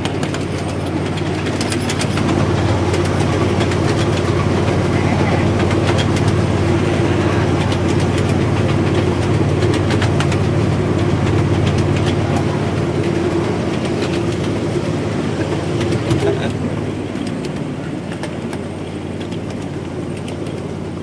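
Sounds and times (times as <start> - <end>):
wheels clicking over rail: 0.0 - 20.9
miniature train droning: 0.0 - 21.0.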